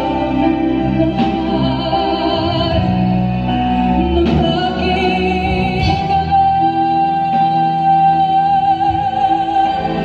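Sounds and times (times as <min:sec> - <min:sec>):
live band playing a ballad: 0:00.0 - 0:10.0.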